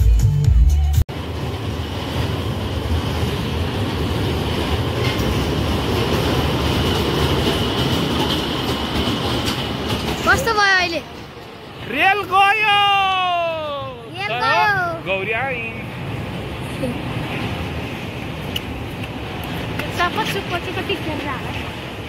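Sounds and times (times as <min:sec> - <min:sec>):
man shouting: 0:11.9 - 0:15.0.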